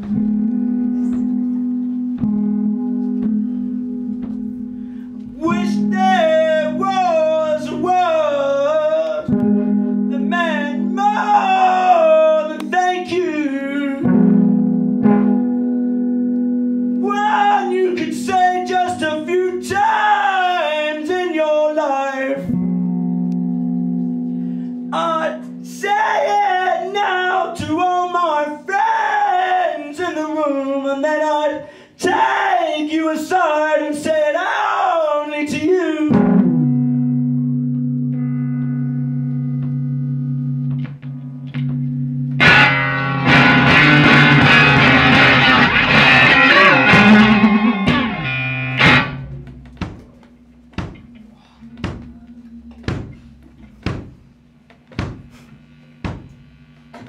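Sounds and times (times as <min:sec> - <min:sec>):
electric guitar chords ringing: 0:00.0 - 0:21.2, 0:22.4 - 0:27.5, 0:35.9 - 0:54.7
man singing: 0:05.2 - 0:14.2, 0:17.0 - 0:22.6, 0:24.9 - 0:36.5.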